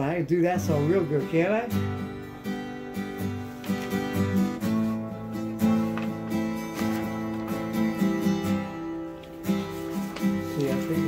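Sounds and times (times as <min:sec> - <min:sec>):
acoustic guitar strumming: 0:00.0 - 0:11.0.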